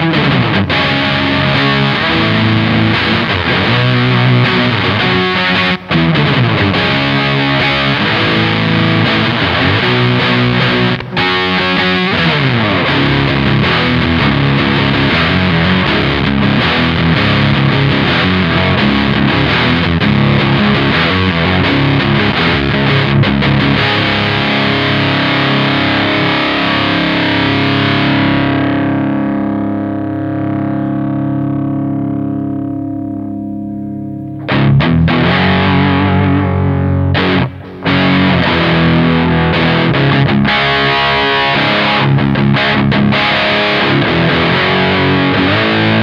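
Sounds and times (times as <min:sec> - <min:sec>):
distorted electric guitar riffing: 0:00.0 - 0:46.0.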